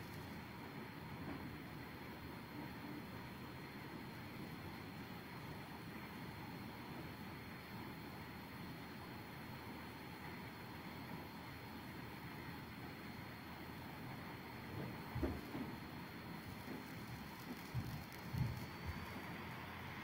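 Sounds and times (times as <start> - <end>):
thin high whine: 0.0 - 20.0.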